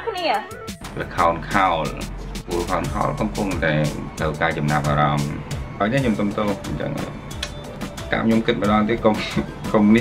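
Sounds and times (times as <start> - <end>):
background music: 0.0 - 10.0
man talking: 0.8 - 7.2, 8.1 - 10.0.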